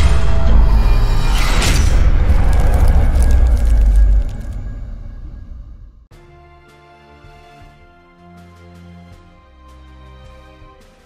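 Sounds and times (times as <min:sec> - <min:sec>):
deep boom: 0:00.0 - 0:06.1.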